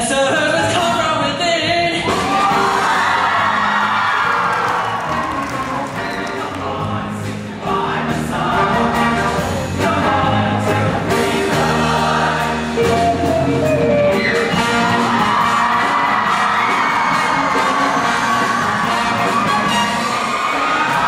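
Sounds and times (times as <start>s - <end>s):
live band: 0.0s - 21.0s
choir singing: 5.0s - 21.0s.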